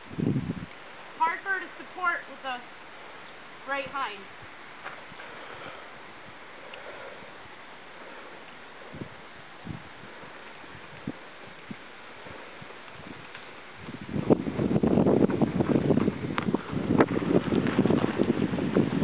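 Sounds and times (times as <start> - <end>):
rough wind buffeting: 0.0 - 19.0
wind hissing on microphone: 0.0 - 19.0.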